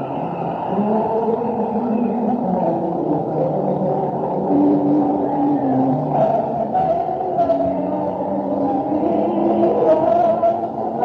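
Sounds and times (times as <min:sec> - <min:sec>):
muffled live concert music: 0:00.0 - 0:11.0.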